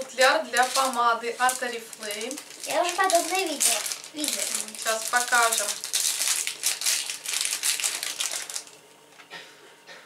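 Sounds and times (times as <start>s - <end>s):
plastic wrapping crinkling: 0.0s - 8.9s.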